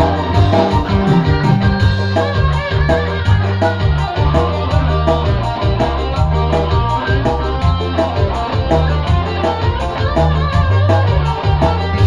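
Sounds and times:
bass line: 0.0 - 12.0
drum beat: 0.0 - 12.0
electric guitar: 0.0 - 12.0
electric keyboard: 0.0 - 12.0.

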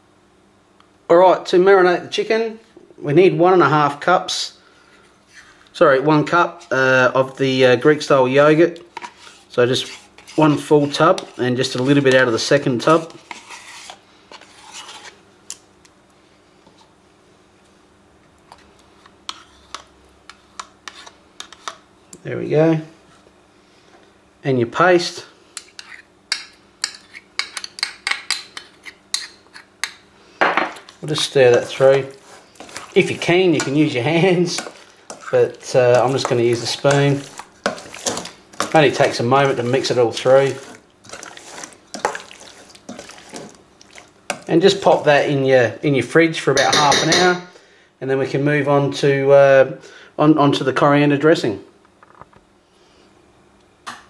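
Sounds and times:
spoon scraping plastic tub: 8.9 - 15.2, 19.0 - 21.8, 30.7 - 45.4
wet squelches of marinade: 30.8 - 45.3.

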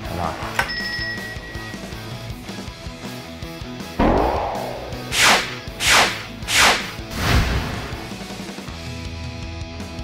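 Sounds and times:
whoosh sound effects: 4.0 - 7.2.

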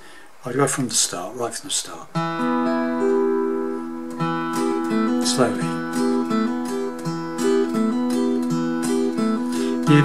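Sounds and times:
acoustic guitar chord strummed: 2.1 - 10.0
acoustic guitar notes picked: 2.1 - 10.0.

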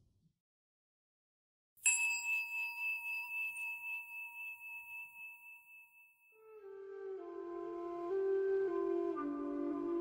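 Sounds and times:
singing bowl ringing: 1.8 - 6.5.

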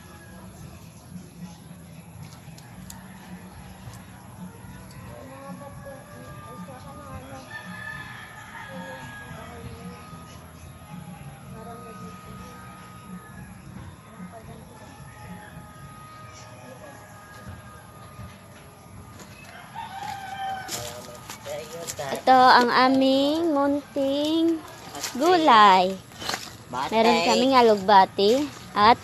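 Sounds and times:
rooster crowing: 2.7 - 4.2, 7.3 - 10.1, 19.4 - 22.9.

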